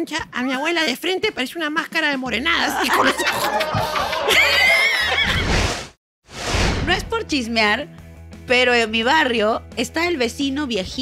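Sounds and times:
studio audience laughter: 2.8 - 5.8.

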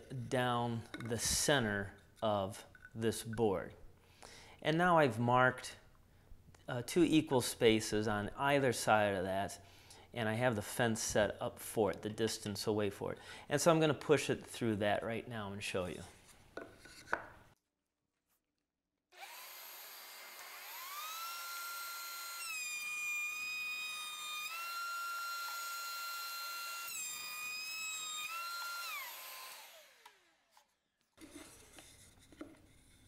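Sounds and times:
router cutting wood: 19.2 - 30.6
router whine: 19.2 - 30.6.

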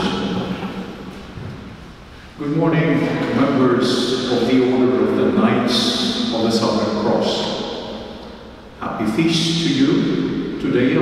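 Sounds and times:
low rumble and hum: 0.0 - 11.0
voice echo: 0.0 - 11.0.

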